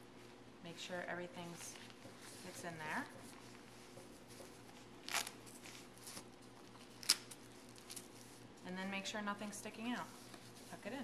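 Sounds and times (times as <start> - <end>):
soft fabric handling: 0.1 - 11.0.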